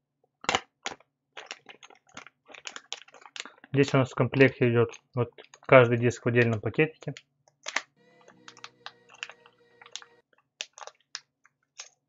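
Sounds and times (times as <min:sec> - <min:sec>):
plastic bag crinkling: 0:00.8 - 0:11.2.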